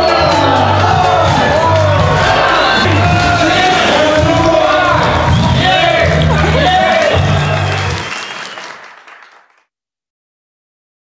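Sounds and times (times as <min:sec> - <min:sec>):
music with heavy bass beat: 0:00.0 - 0:08.0
crowd applauding and cheering: 0:00.0 - 0:09.7.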